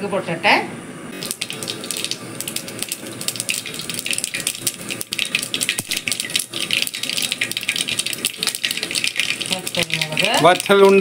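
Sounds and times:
seeds popping in hot oil: 0:01.2 - 0:11.0.

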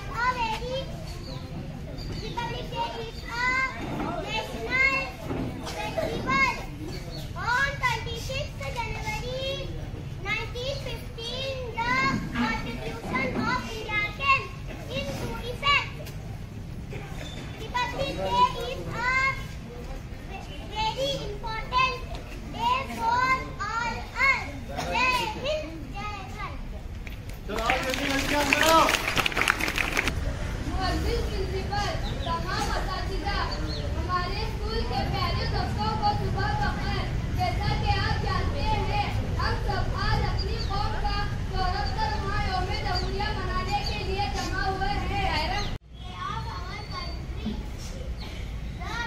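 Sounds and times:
children's high-pitched voices: 0:00.0 - 0:26.8, 0:28.2 - 0:49.0
background murmur: 0:00.0 - 0:49.0.

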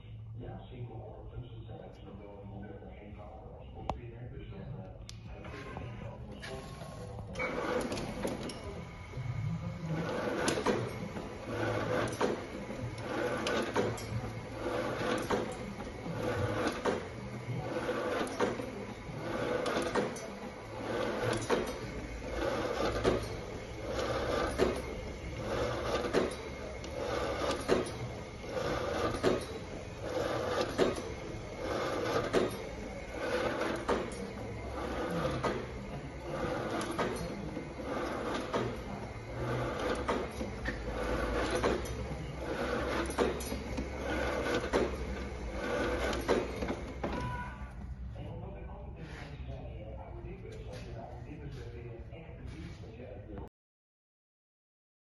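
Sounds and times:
slicer drive humming: 0:04.0 - 0:47.8
cyclic mechanical clatter: 0:06.8 - 0:47.2.

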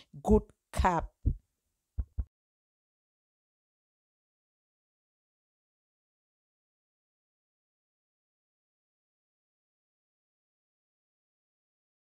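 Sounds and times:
low thumps: 0:02.0 - 0:02.3.

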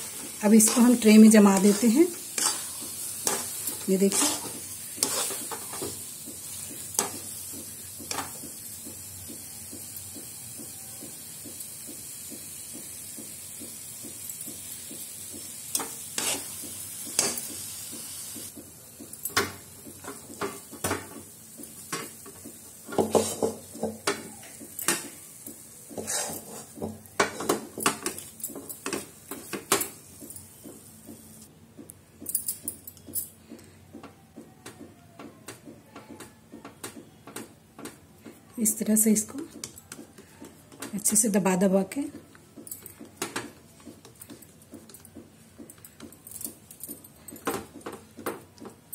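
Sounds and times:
metal spoon scraping steel pan: 0:00.1 - 0:05.9, 0:26.0 - 0:26.7.

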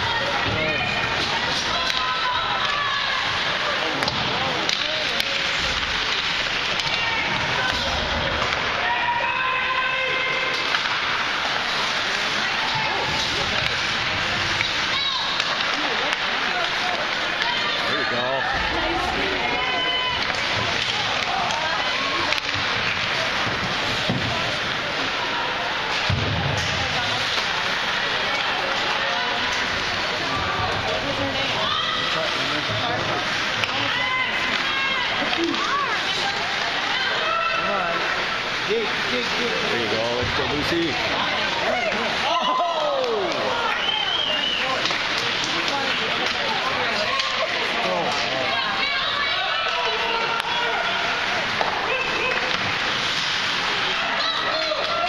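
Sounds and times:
spectators' voices: 0:00.0 - 0:55.0
steady hall noise: 0:00.0 - 0:55.0.

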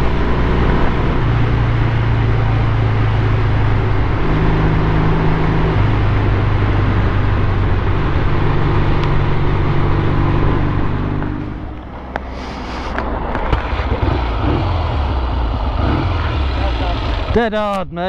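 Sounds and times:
motorcycle engine running: 0:00.0 - 0:17.6
wind and road noise: 0:00.0 - 0:18.0.

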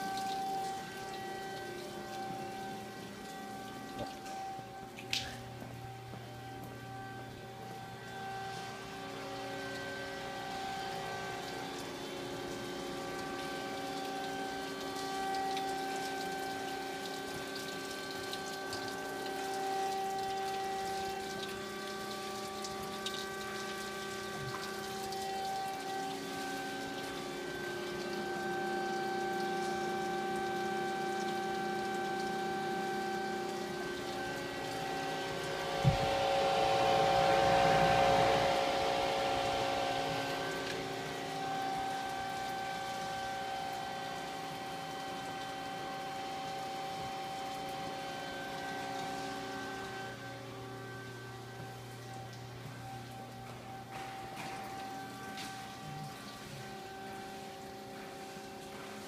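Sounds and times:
coolant splashing: 0:00.0 - 0:59.0
band saw humming: 0:33.6 - 0:44.0.

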